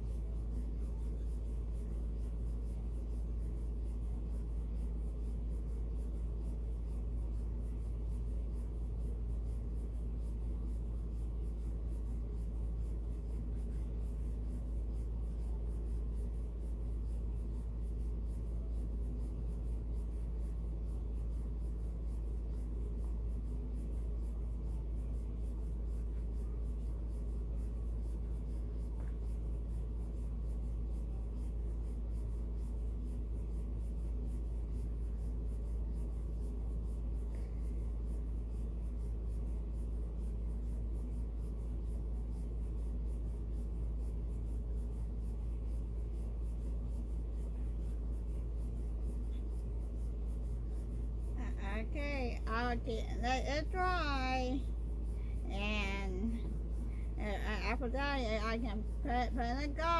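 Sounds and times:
paintbrush scratching on wood: 0:00.0 - 0:59.9
steady low hum: 0:00.0 - 0:59.9.

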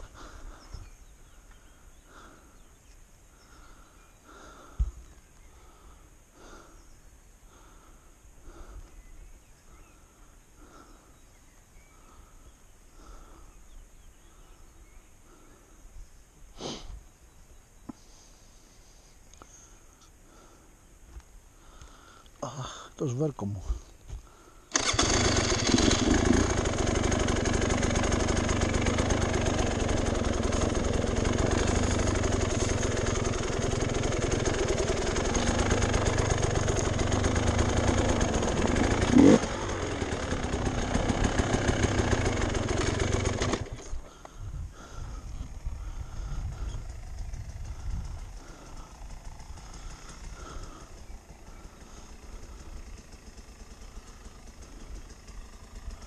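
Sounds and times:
dirt bike engine running: 0:00.0 - 0:06.8, 0:23.7 - 0:56.0.

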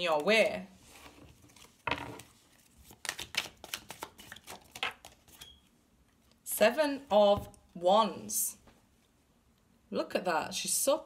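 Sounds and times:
cards being shuffled: 0:00.1 - 0:05.5.

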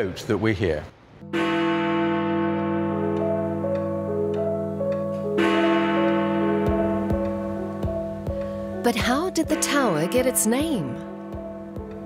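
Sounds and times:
deep bell ringing: 0:01.2 - 0:12.0
soft piano music: 0:01.2 - 0:12.0.

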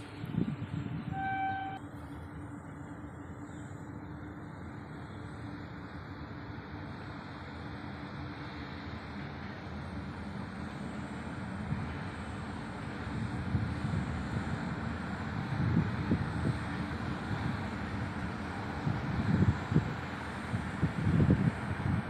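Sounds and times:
train wheels rumbling on track: 0:00.0 - 0:22.0.

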